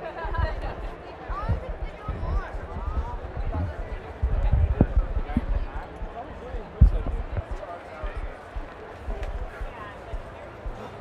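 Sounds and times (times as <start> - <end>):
crowd chatter: 0.0 - 11.0
low dull thumps: 1.3 - 10.8.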